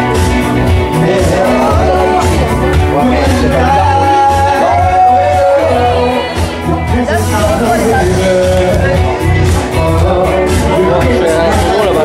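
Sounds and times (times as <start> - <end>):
dance music with bass beat: 0.0 - 12.0
person singing amplified: 0.8 - 12.0.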